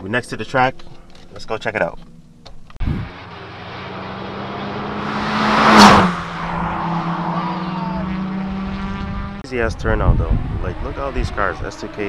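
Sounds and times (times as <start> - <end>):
car passing at speed: 2.9 - 9.4.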